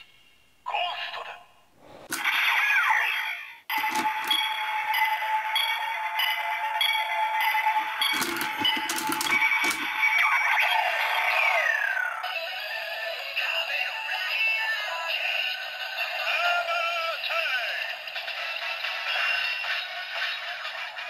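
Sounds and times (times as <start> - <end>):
toy belt clicks: 3.7 - 4.4, 8.0 - 10.1.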